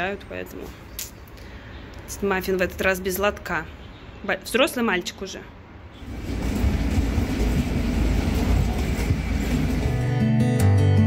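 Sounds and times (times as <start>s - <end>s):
airport terminal rumble: 6.0s - 10.3s
acoustic guitar music: 7.9s - 11.0s.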